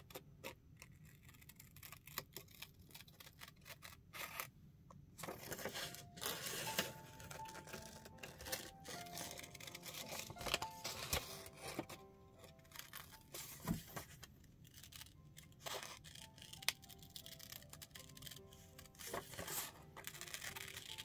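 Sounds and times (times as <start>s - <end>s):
scissors snipping paper: 0.0s - 4.5s, 5.2s - 21.0s
quiet background music: 0.0s - 21.0s.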